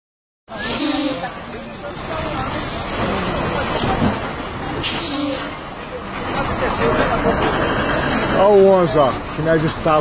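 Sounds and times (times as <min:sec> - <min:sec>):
fire rushing noise: 0:00.5 - 0:10.0
onlookers' voices: 0:00.5 - 0:10.0.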